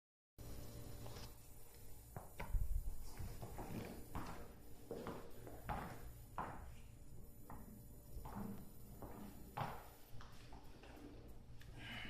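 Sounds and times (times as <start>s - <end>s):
footsteps in work boots: 1.0s - 11.0s.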